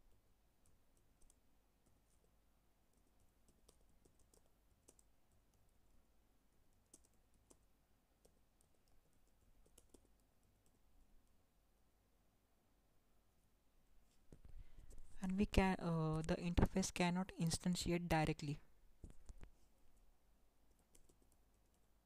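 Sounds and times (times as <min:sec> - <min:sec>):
keyboard typing clicks: 0:09.6 - 0:10.8, 0:20.7 - 0:21.9.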